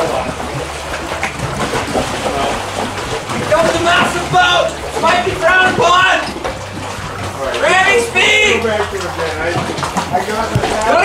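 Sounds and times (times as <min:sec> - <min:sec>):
people talking and exclaiming: 0:02.2 - 0:11.0.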